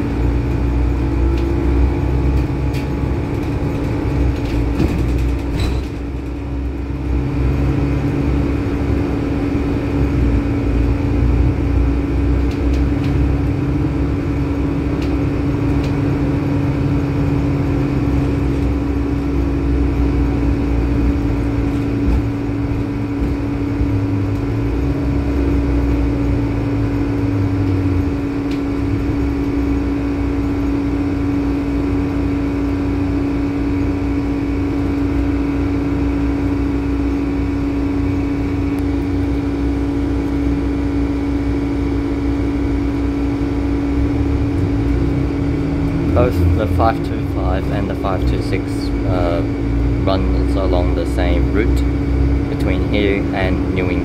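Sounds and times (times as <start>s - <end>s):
air conditioning hum: 0.0s - 54.0s
bus diesel engine droning: 0.0s - 54.0s.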